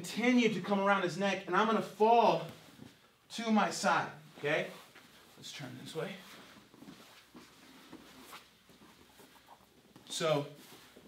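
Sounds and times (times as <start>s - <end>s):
bodies rustling on mat: 4.3s - 11.0s.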